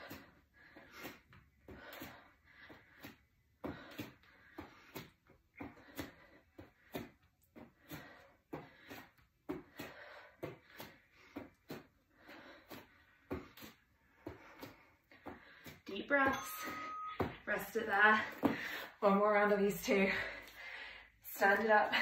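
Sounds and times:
person breathing: 0.0s - 15.8s, 18.3s - 19.0s, 20.1s - 21.2s.

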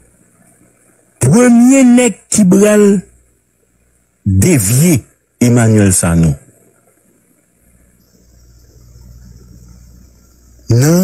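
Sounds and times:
faint low rumble: 3.1s - 11.0s.

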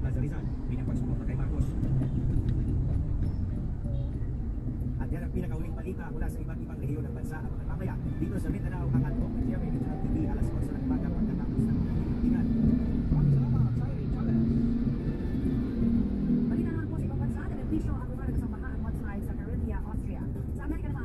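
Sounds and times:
car road and engine rumble: 0.0s - 21.0s.

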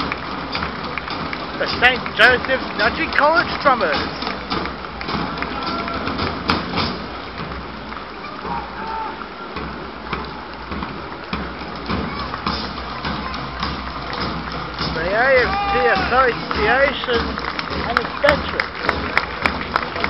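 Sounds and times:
crowd chatter: 0.0s - 20.0s
marching drumline playing: 0.0s - 20.0s
man's voice: 14.9s - 18.6s.

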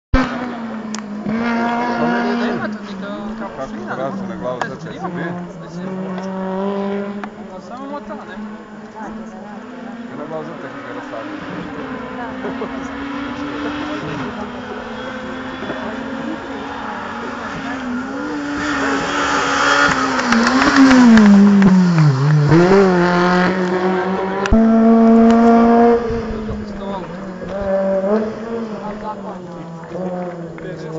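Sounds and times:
race car engine at high revs: 0.1s - 30.9s.

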